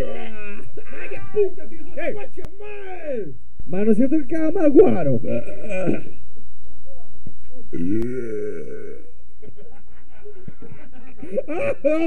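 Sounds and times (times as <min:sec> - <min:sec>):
man burping: 0:05.4 - 0:06.2, 0:07.7 - 0:09.2
muttered voice: 0:07.7 - 0:09.1.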